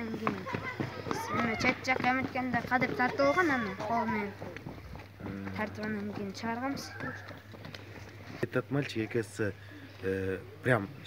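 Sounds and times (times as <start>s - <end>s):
boy talking: 0.0s - 4.6s.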